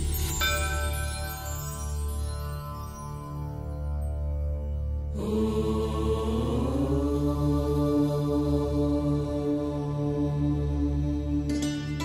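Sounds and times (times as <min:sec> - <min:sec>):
low drone: 0:05.0 - 0:11.6.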